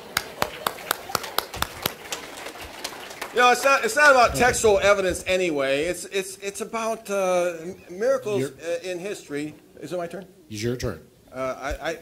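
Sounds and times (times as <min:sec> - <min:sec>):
faint room murmur: 0:00.0 - 0:12.0.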